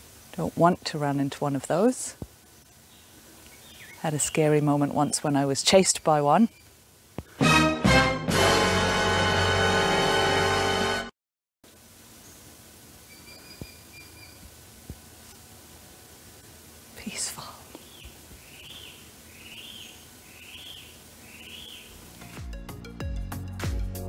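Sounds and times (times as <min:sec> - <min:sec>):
faint steady hiss: 0:00.0 - 0:07.5, 0:11.6 - 0:22.9
birds calling: 0:02.6 - 0:06.8, 0:17.7 - 0:22.4
music: 0:07.4 - 0:11.1, 0:22.1 - 0:24.0.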